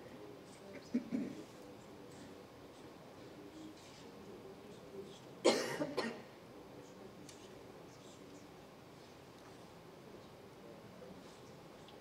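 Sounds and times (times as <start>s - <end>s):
person coughing: 5.4s - 6.2s.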